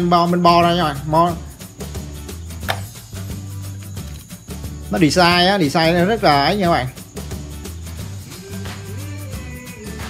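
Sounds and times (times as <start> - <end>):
soft background music: 0.0 - 10.0
handling click: 2.7 - 3.0.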